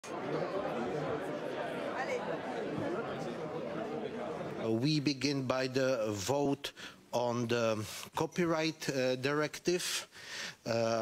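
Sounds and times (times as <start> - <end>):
people chattering: 0.0 - 6.6.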